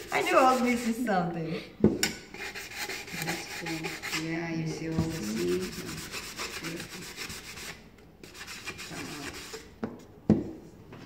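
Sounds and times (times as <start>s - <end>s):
sanding sponge rubbing wood: 0.0s - 1.1s, 2.4s - 9.7s.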